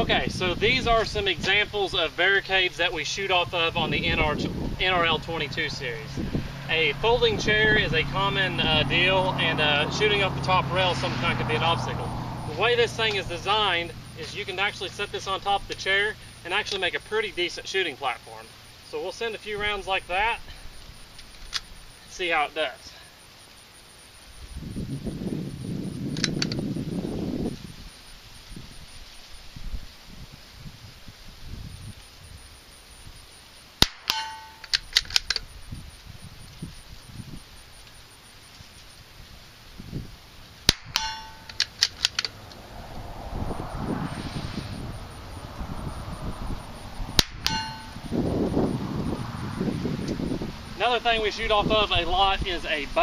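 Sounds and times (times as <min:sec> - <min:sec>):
rifle shots: 0:33.8 - 0:35.3
metallic ring: 0:34.0 - 0:35.0, 0:40.7 - 0:41.8, 0:47.2 - 0:48.2
quick clicks: 0:40.7 - 0:42.6.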